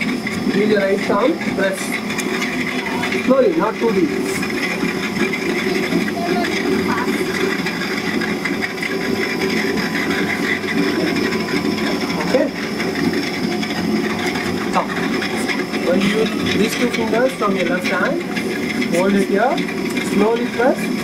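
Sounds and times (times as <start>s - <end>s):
potter's wheel whirring: 0.0s - 21.0s.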